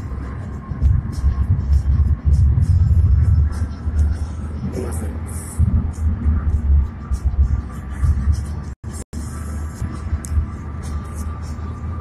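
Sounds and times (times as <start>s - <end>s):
car cabin rumble: 0.0s - 8.8s.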